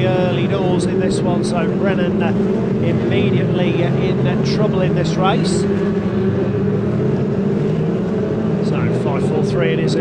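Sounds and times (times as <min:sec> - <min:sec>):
racing car engines droning: 0:00.0 - 0:10.0.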